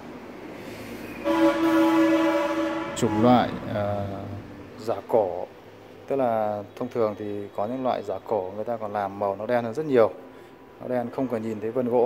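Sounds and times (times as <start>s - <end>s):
train horn blast: 1.2s - 4.4s.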